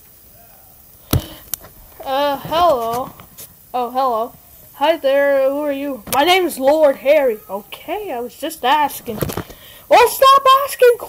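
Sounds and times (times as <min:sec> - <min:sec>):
sharp hard knock: 0:01.1 - 0:01.4.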